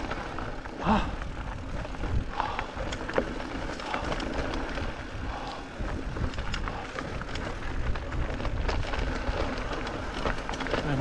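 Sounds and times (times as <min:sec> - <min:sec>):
bike rattling and clicking: 0:00.0 - 0:11.0
bike tyres crunching on gravel: 0:00.0 - 0:11.0
wind rumble on microphone: 0:00.0 - 0:11.0.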